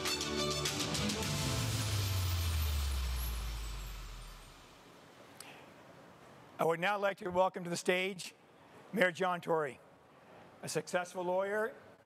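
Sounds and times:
deep bass music sting sliding down: 1.1 - 4.8.

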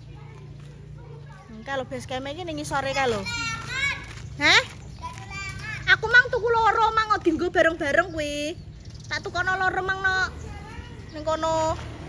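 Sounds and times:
voices chattering: 0.0 - 12.0.

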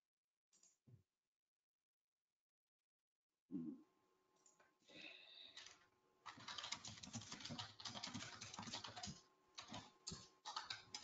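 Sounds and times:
computer keyboard typing: 5.6 - 11.0.

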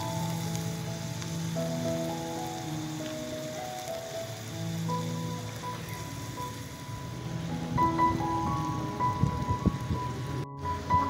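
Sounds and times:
soft background music: 0.0 - 11.0
vegetables sizzling in a pan: 0.0 - 11.0.

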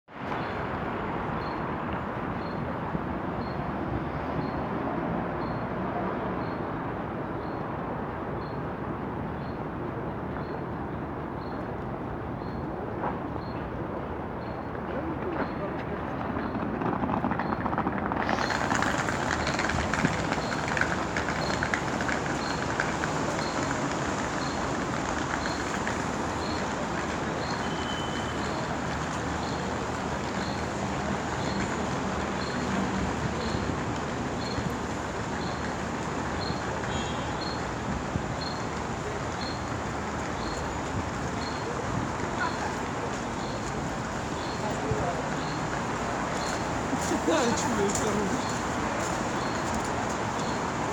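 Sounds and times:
road traffic: 0.1 - 50.9
voices of people: 38.4 - 49.6.

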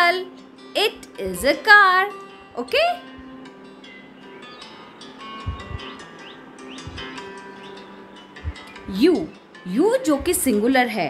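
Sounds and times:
quiet background music: 0.0 - 11.0
birds chirping: 3.1 - 9.6.

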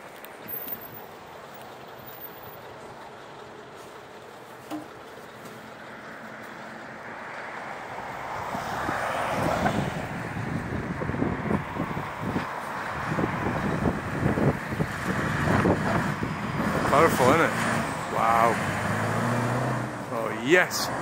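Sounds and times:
road traffic noise: 0.0 - 21.0
vehicle passing close: 4.7 - 21.0
wind buffeting microphone: 8.3 - 16.9.

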